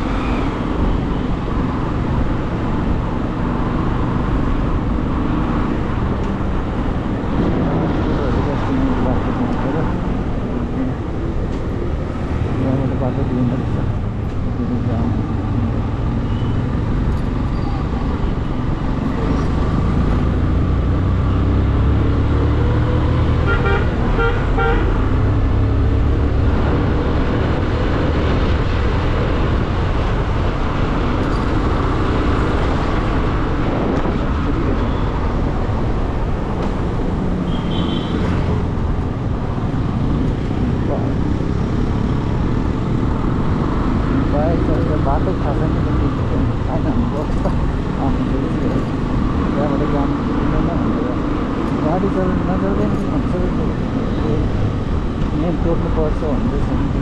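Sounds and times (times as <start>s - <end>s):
low wind rumble: 0.0s - 37.4s.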